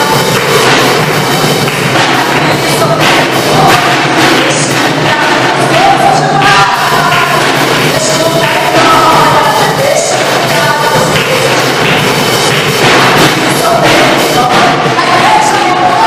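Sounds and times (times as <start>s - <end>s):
band accompaniment: 0.0s - 16.0s
drum hits: 0.0s - 16.0s
woman singing: 2.0s - 12.0s, 12.8s - 16.0s.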